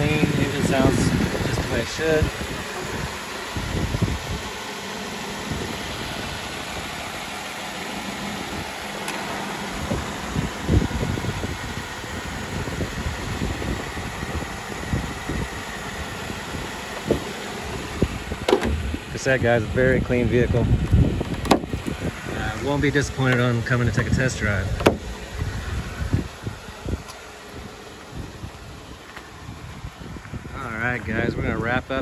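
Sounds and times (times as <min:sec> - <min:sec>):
car engine idling: 0:00.0 - 0:32.0.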